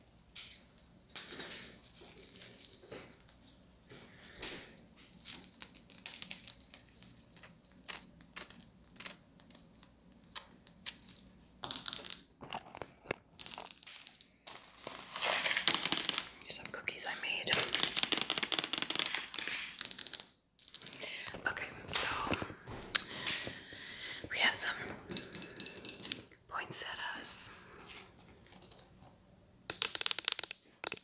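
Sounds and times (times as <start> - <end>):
scratching and rustling: 14.5 - 16.1.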